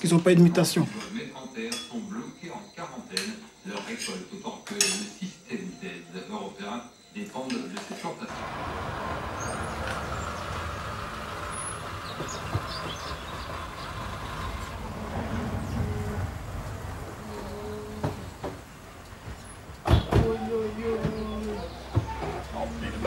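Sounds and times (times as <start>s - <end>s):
car engine at low speed: 8.3s - 23.0s
car doors knocking shut: 18.0s - 22.4s.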